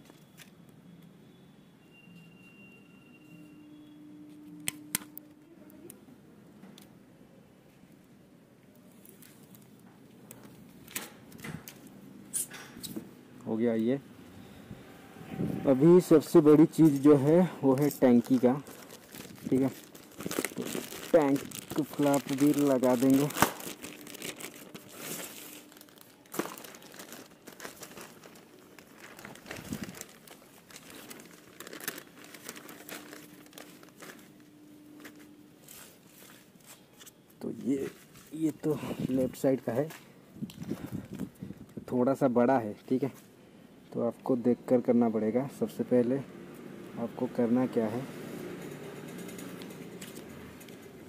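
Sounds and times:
plastic packaging crinkling: 0:16.3 - 0:39.9.

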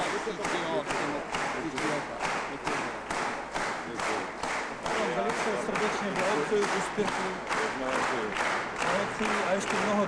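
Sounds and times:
audience clapping in unison: 0:00.0 - 0:10.0.

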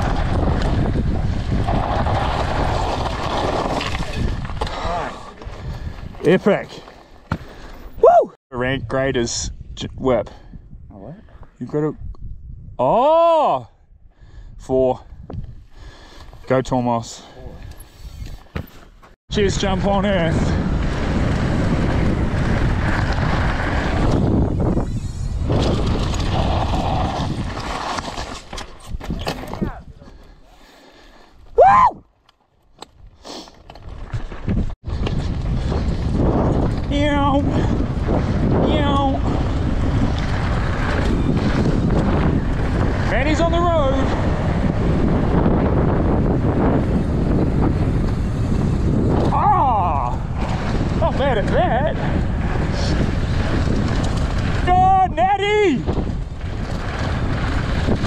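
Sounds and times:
bike rattling over gravel: 0:00.0 - 0:07.7, 0:19.4 - 0:30.3, 0:33.6 - 0:58.0
wind rush on microphone: 0:00.0 - 0:18.6, 0:19.3 - 0:32.1, 0:33.8 - 0:58.0
rising whoop: 0:08.0 - 0:08.4, 0:31.6 - 0:32.0.

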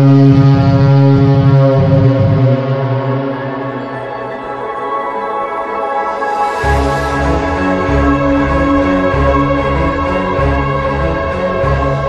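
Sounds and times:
low synthesized drone: 0:00.0 - 0:12.0.

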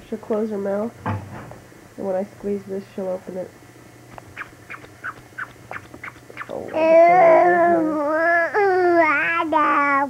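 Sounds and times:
squeaky toy squeaking: 0:04.4 - 0:06.5.

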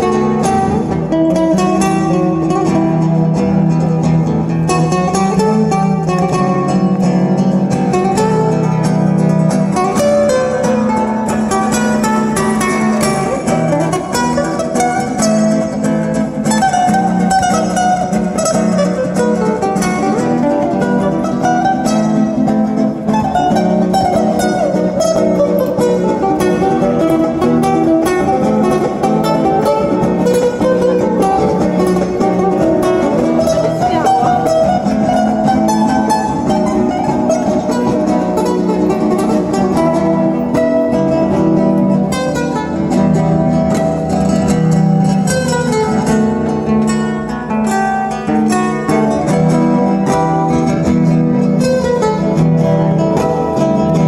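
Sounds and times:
fingerpicked acoustic guitar: 0:00.0 - 0:54.0.

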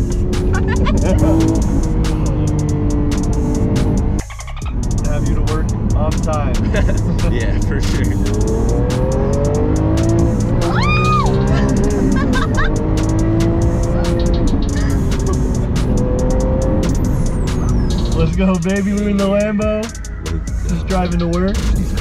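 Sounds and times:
car engine accelerating hard: 0:00.0 - 0:22.0
woman screaming and cheering: 0:10.6 - 0:12.7.

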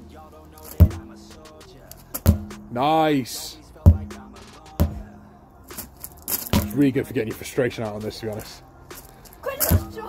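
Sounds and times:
low background music: 0:00.0 - 0:10.0
sledgehammer thudding on tyre: 0:00.2 - 0:01.5, 0:02.1 - 0:02.8, 0:03.8 - 0:05.1, 0:05.8 - 0:08.1, 0:09.5 - 0:10.0.

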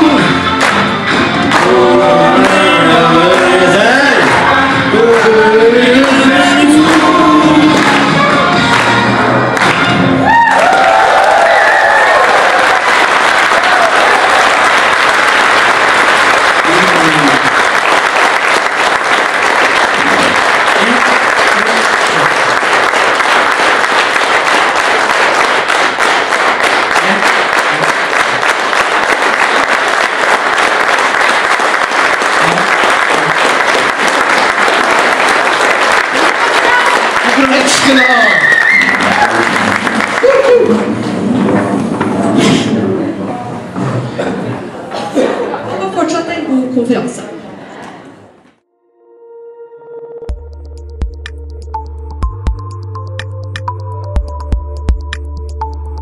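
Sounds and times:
music with singing: 0:00.0 - 0:10.0
audience applauding: 0:00.0 - 0:41.6.

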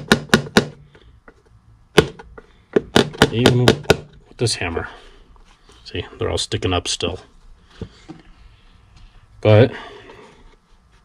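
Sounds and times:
hammer tapping metal punch: 0:00.0 - 0:00.9, 0:01.9 - 0:04.2.

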